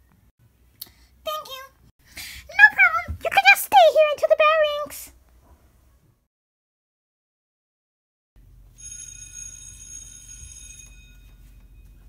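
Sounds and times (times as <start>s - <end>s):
bell ringing: 8.8s - 12.0s.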